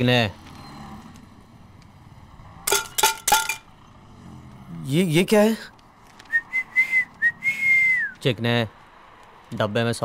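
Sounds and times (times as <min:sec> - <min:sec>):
person whistling: 0:06.3 - 0:08.2.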